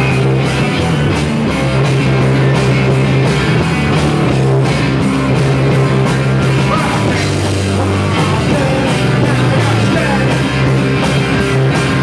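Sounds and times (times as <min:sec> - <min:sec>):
rock band playing loud: 0:00.0 - 0:12.0.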